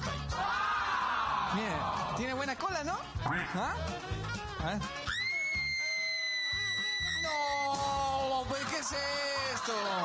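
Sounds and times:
background music: 0.0 - 10.0
high-pitched scream: 5.1 - 8.0.

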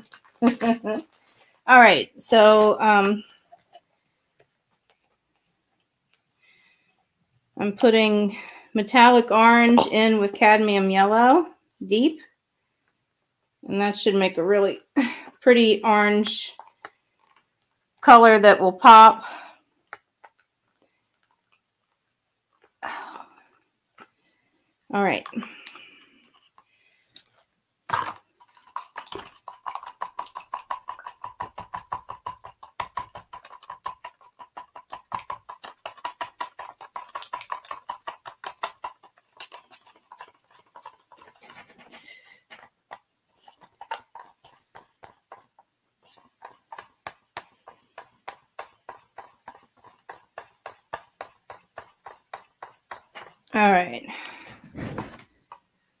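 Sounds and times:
stick scraping in plastic cup: 2.2 - 3.9, 25.1 - 55.6.

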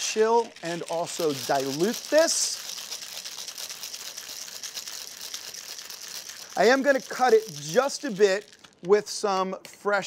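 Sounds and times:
ice rattling in shaken metal tin: 0.0 - 9.2.

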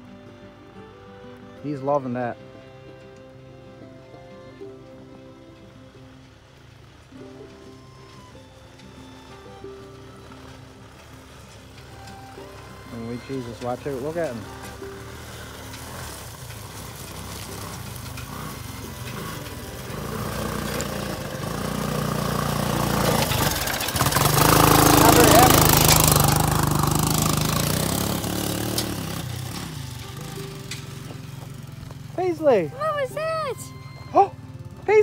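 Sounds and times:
quad engine driving past: 0.0 - 35.0.

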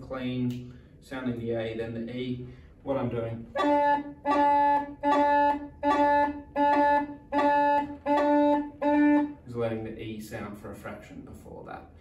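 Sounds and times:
bagpipe chanter playing notes: 3.5 - 9.5.

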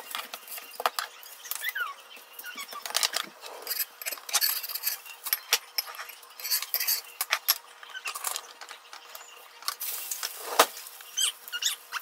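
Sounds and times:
dishes and utensils clinking: 2.5 - 10.8.

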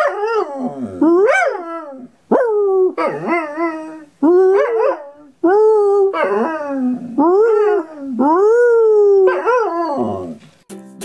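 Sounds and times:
dog howling: 0.0 - 10.4
plucked-string music: 10.1 - 11.0.

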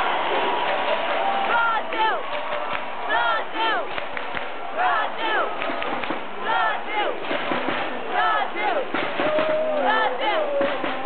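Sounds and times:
rising and falling crowd calls: 0.0 - 11.0
football fans chanting: 1.2 - 2.3, 2.9 - 4.0, 4.6 - 11.0.

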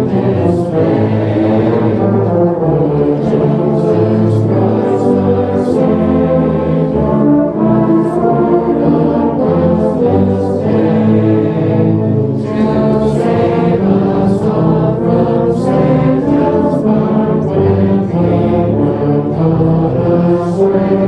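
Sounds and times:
tubas and euphoniums playing carol: 0.0 - 21.0.

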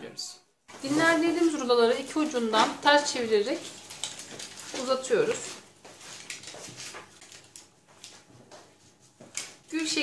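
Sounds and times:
hands rolling dough on a mat: 2.3 - 10.0.

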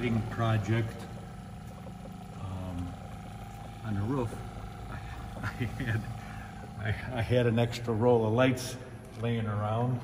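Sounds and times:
water pump humming: 0.0 - 10.0.

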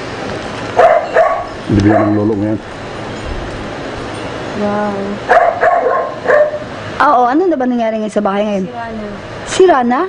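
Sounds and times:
dog barking: 0.8 - 2.3, 5.3 - 6.7.

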